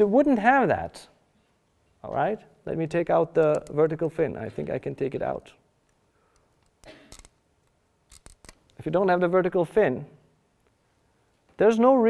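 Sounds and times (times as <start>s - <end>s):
man speaking: 2.0s - 5.6s, 8.8s - 10.2s, 11.6s - 12.0s.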